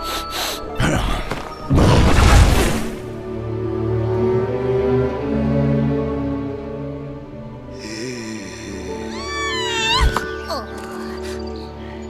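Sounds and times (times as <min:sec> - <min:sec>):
background music: 0:00.0 - 0:12.0
cartoon squirrel squealing: 0:09.1 - 0:10.7.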